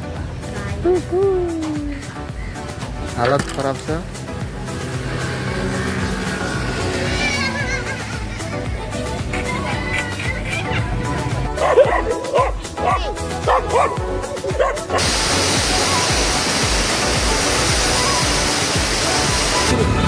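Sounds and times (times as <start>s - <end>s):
background music with beat: 0.0s - 20.0s
dog barking: 11.6s - 15.1s
waterfall rushing: 12.1s - 20.0s.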